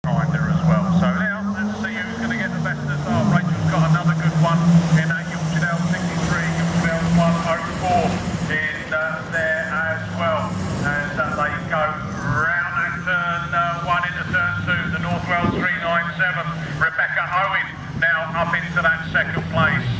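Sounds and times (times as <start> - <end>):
car engines droning: 0.0 - 19.9
people talking: 0.0 - 19.9.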